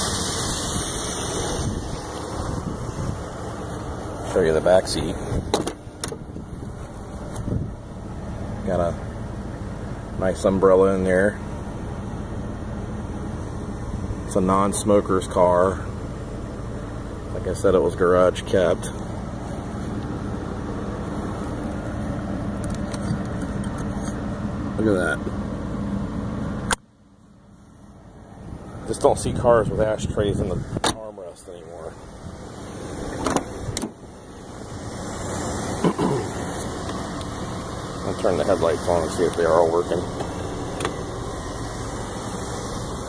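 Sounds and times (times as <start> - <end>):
car engine idling: 0.0 - 43.0
car door handle and latch clicks: 5.5 - 6.2, 33.1 - 34.0.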